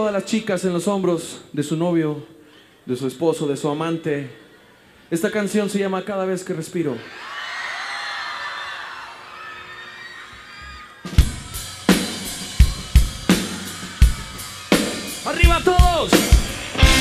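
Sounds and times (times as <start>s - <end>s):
crowd cheering and whistling: 7.0s - 17.0s
rock drum kit beat: 11.0s - 17.0s.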